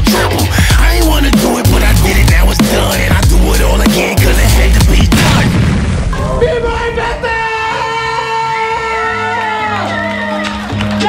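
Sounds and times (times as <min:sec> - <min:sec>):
hip-hop backing track: 0:00.0 - 0:05.6
deep boom: 0:00.7 - 0:07.6.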